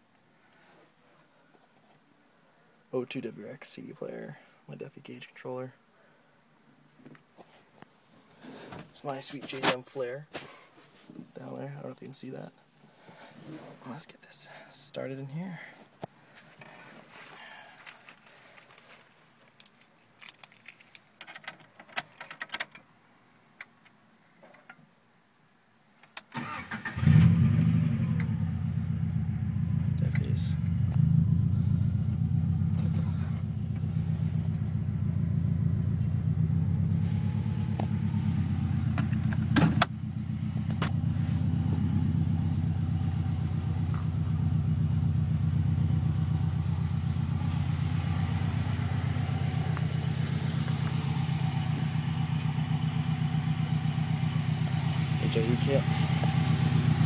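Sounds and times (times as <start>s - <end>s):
car engine idling: 26.9s - 57.0s.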